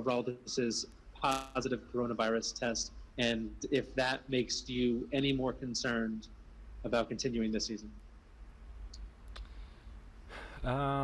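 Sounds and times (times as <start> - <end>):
steady low hum: 0.0 - 11.0
faint clicks: 8.9 - 9.6.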